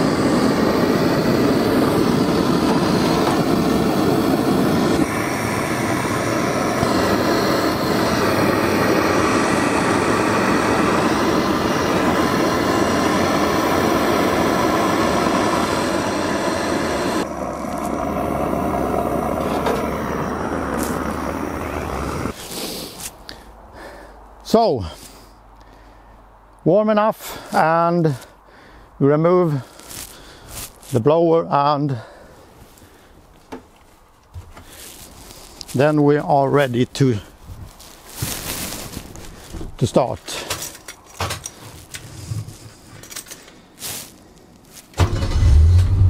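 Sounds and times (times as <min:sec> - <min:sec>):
fuel burner hissing: 0:00.0 - 0:25.4, 0:34.4 - 0:46.0.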